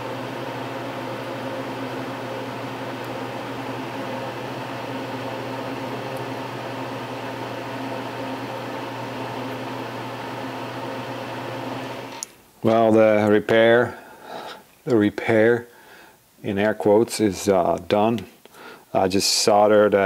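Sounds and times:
small electric fan humming: 0.0s - 12.4s.

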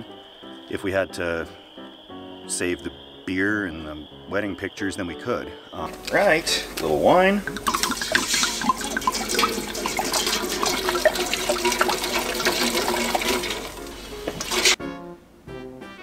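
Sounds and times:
wine pouring and glugging: 5.9s - 14.8s.

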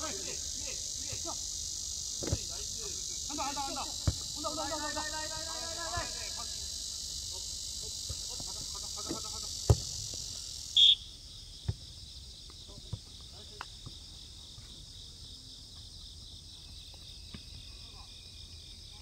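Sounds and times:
insect chorus chirring: 0.0s - 19.0s
footballs being kicked: 4.0s - 4.3s, 9.1s - 10.0s.

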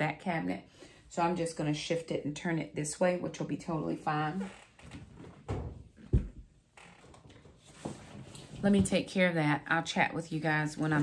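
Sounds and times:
cabinet shuffling on floor: 7.3s - 9.0s.

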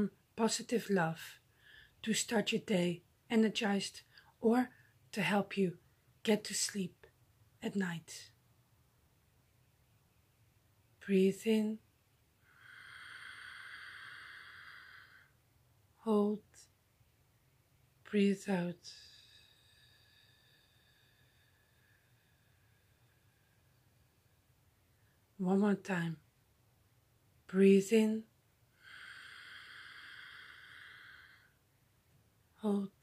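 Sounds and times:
woman breathing in deeply: 1.5s - 2.0s, 12.4s - 15.4s, 18.9s - 24.5s, 28.7s - 31.7s.

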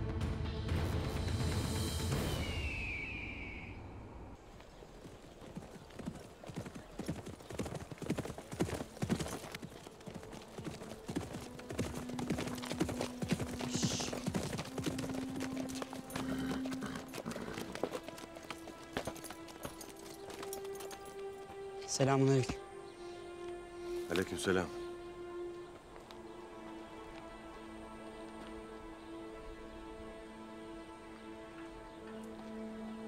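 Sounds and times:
background music with low held notes: 0.0s - 2.9s, 8.6s - 33.0s
horse hooves clip-clopping: 4.5s - 22.6s, 25.2s - 30.0s, 31.5s - 32.9s.

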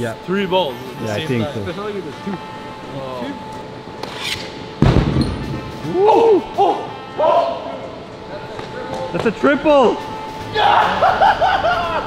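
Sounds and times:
hockey stick scraping floor: 4.0s - 4.5s.

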